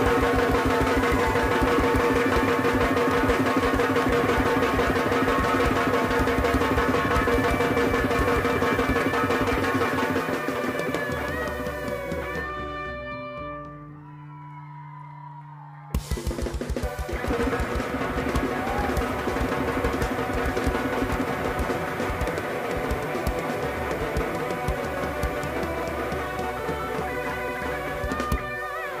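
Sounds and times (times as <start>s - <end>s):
live rock band playing: 0.0s - 13.9s, 16.0s - 29.0s.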